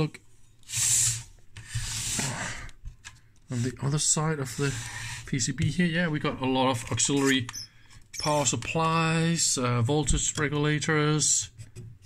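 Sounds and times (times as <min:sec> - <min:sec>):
rubbing and scraping handling noise: 0:00.2 - 0:12.0.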